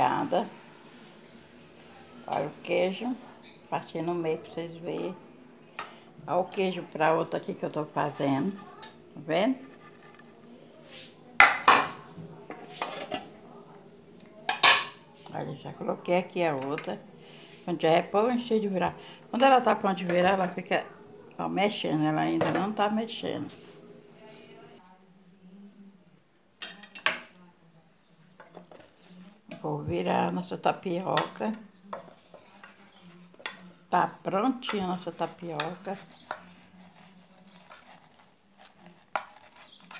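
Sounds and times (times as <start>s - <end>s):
metal utensil scraping a pan: 7.5s - 13.4s, 30.9s - 39.9s
cookware clattering: 11.4s - 13.4s, 14.4s - 15.1s, 22.2s - 23.6s, 26.6s - 27.3s.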